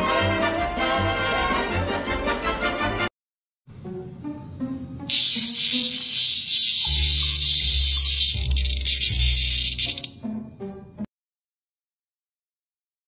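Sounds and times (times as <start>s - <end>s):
cicada buzzing: 5.1s - 10.2s.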